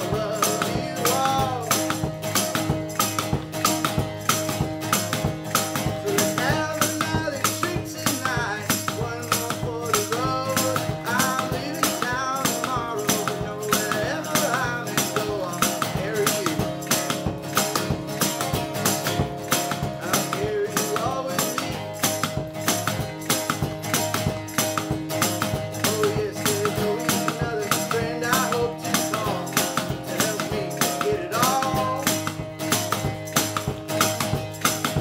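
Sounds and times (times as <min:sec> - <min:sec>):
foot stomping beat: 0:00.0 - 0:35.0
strummed acoustic guitar: 0:00.0 - 0:35.0.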